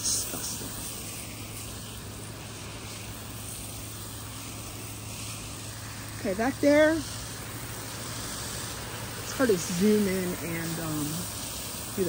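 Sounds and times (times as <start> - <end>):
hose water spray hissing: 0.0 - 12.0.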